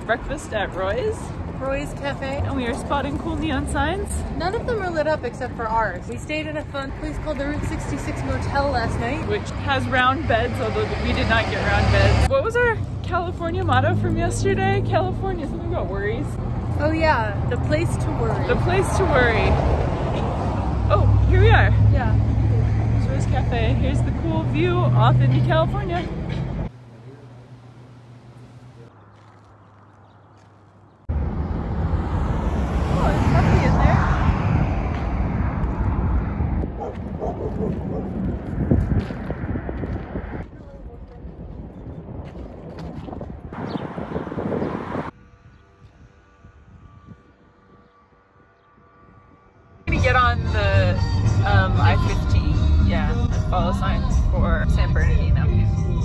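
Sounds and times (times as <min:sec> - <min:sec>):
steady low rumble: 0:31.0 - 0:47.7, 0:49.8 - 0:56.0
music: 0:49.9 - 0:56.0.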